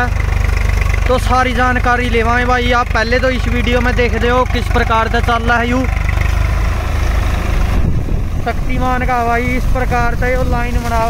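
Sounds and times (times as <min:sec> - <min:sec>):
tractor diesel engine running: 0:00.0 - 0:11.0
man speaking: 0:01.0 - 0:06.0, 0:08.4 - 0:11.0.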